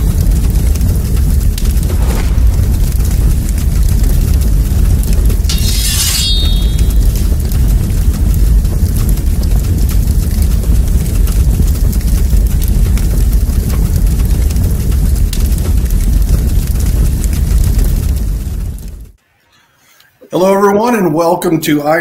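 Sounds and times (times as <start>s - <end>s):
fire rumbling and crackling: 0.0s - 19.2s.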